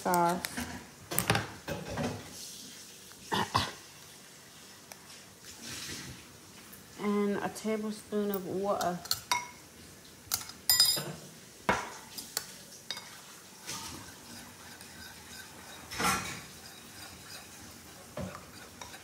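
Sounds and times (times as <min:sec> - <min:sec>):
metal spoon clinking ceramic bowl: 0:10.3 - 0:11.1.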